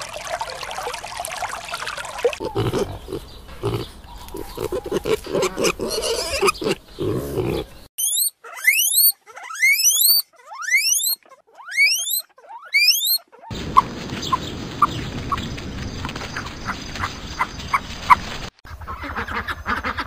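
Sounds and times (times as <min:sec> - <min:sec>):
pig grunting: 0:02.4 - 0:07.9
guinea pig squealing: 0:02.4 - 0:13.5.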